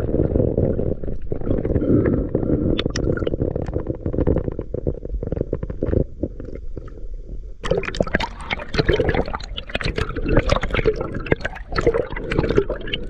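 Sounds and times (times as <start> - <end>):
muffled underwater rumble: 0.0 - 13.0.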